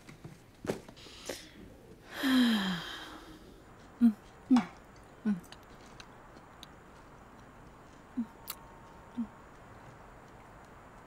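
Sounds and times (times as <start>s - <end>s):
woman sighing: 2.0s - 4.2s.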